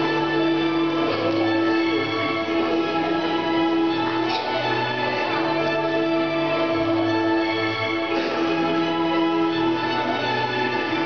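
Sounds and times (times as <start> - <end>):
slow string music: 0.0 - 11.0.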